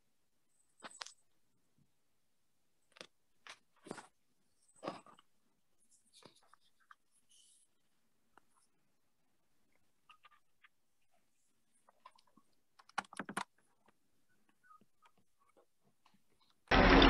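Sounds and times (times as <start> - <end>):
faint scattered clicks and knocks: 11.7 - 16.7.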